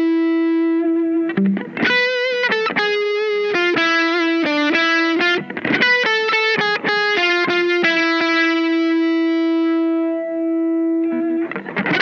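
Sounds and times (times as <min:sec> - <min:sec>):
distorted electric guitar notes: 0:00.0 - 0:12.0.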